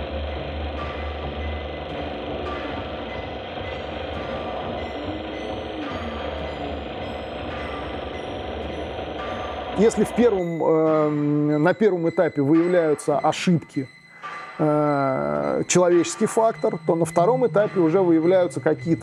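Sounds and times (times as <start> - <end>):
low pulsing synth bass: 0.0 - 11.4
short synth bleeps: 1.3 - 19.0.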